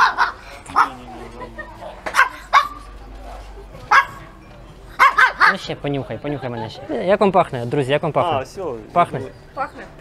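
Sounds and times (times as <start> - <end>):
small dog barking: 0.0 - 1.0, 2.1 - 2.9, 3.9 - 4.3, 5.0 - 5.6.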